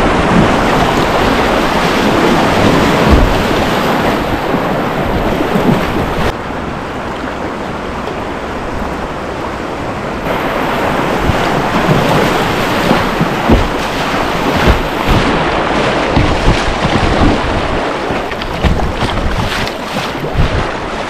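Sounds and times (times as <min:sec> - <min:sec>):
paddle strokes: 0:00.0 - 0:06.3, 0:10.2 - 0:21.0
wind noise on microphone: 0:00.0 - 0:06.3, 0:08.7 - 0:21.0
water slapping against hull: 0:00.0 - 0:06.4, 0:10.2 - 0:21.0
river water rushing: 0:00.0 - 0:21.0.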